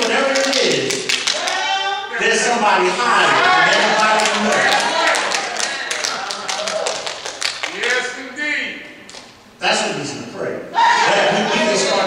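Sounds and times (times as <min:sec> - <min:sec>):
man preaching: 0:00.0 - 0:07.0, 0:07.6 - 0:09.0, 0:09.6 - 0:12.0.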